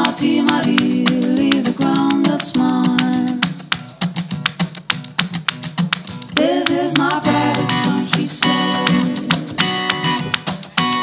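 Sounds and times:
sharp clicking beats: 0:00.0 - 0:11.0
electro-pop band playing: 0:06.4 - 0:11.0.

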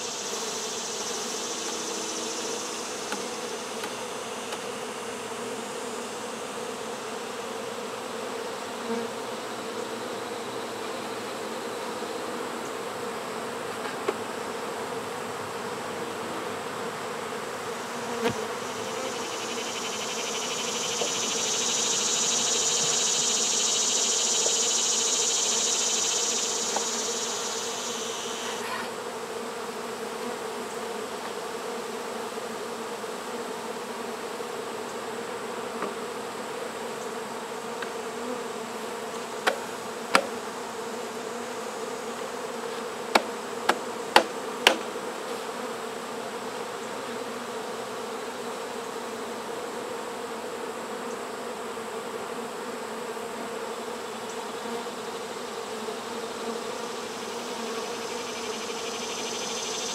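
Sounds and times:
honeybees buzzing: 0:00.0 - 0:59.9.

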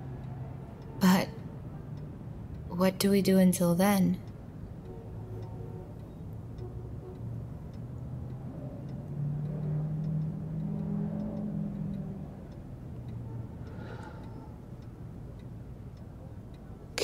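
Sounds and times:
faint regular ticking: 0:00.0 - 0:17.0.

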